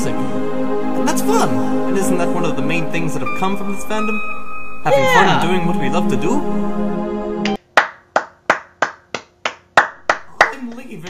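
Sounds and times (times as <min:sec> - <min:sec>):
person clapping hands: 0:07.4 - 0:11.0.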